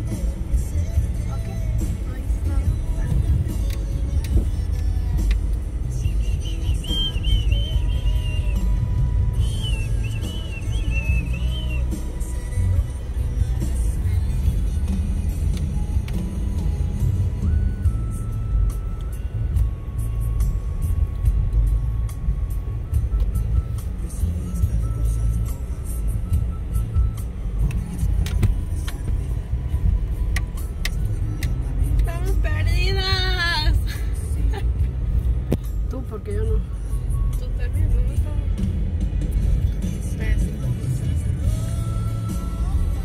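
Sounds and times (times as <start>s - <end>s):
car driving low rumble: 0.0s - 43.0s.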